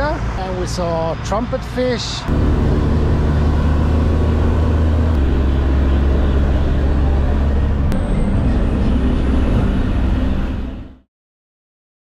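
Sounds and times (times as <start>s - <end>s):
bus engine and road noise: 0.0s - 11.1s.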